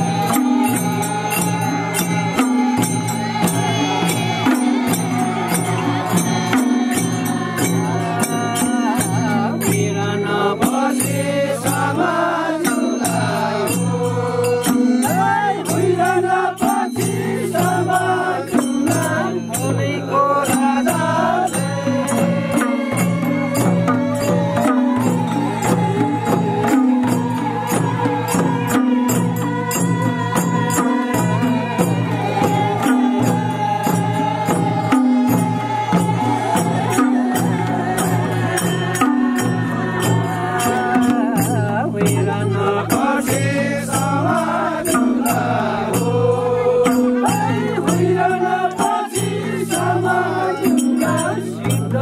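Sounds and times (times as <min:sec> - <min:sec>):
hand drums beaten: 0:00.0 - 0:52.0
jingling percussion: 0:00.0 - 0:52.0
men singing a chant-like folk song: 0:00.0 - 0:52.0.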